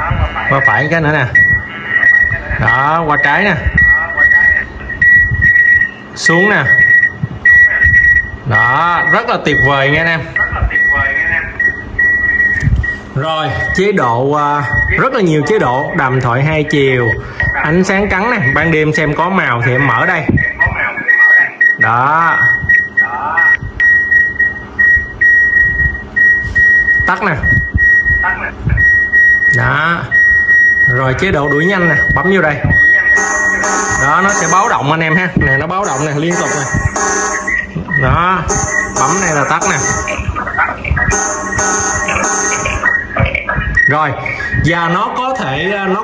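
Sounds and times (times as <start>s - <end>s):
pulsing electronic beeper: 30.2s - 44.1s.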